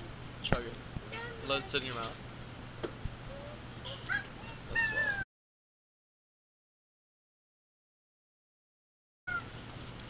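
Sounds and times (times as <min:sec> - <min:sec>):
person squeaking and squealing: 0:04.1 - 0:05.2.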